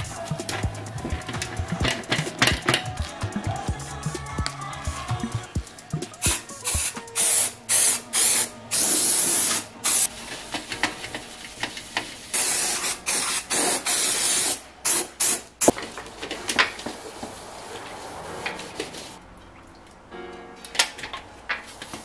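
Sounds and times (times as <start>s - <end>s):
aerosol spray can hissing: 5.6s - 10.1s, 12.3s - 15.5s.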